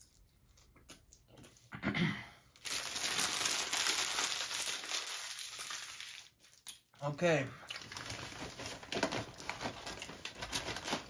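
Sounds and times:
paper wrapper crinkling: 0:02.6 - 0:06.7, 0:07.8 - 0:11.0.

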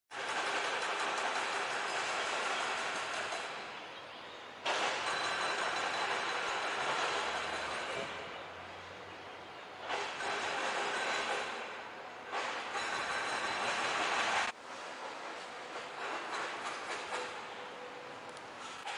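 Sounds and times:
roadside hiss-like noise: 0:00.1 - 0:18.9.

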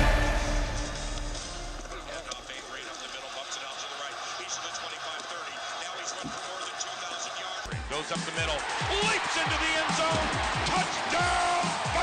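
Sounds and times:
soundtrack music: 0:00.0 - 0:02.8.

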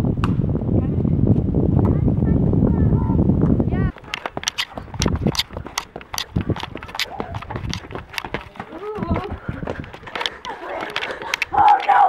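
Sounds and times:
running footsteps: 0:03.4 - 0:12.0.

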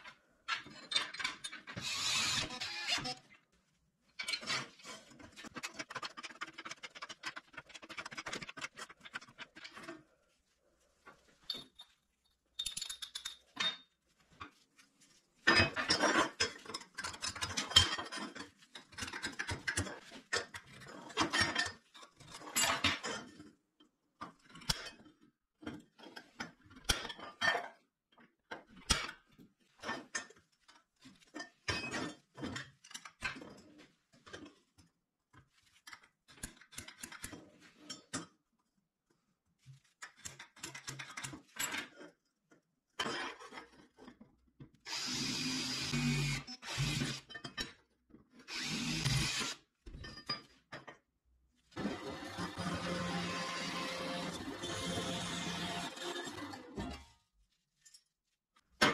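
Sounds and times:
power drill drilling metal: 0:01.8 - 0:03.1, 0:44.9 - 0:47.3, 0:48.5 - 0:49.6, 0:51.8 - 0:56.8.

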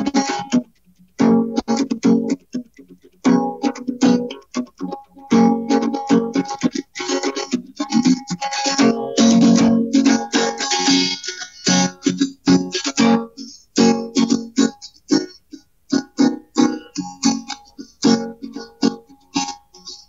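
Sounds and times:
acoustic guitar strumming: 0:00.0 - 0:20.0.

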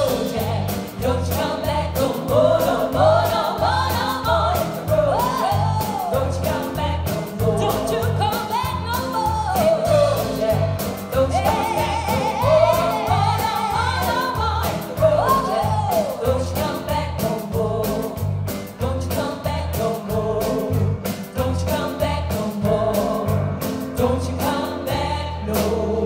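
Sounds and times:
drums: 0:00.0 - 0:26.0
electric bass: 0:00.0 - 0:26.0
women singing: 0:00.0 - 0:26.0.

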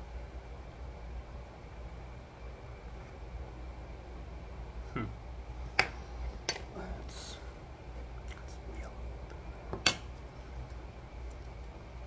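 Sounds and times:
low room hum: 0:00.0 - 0:12.0.

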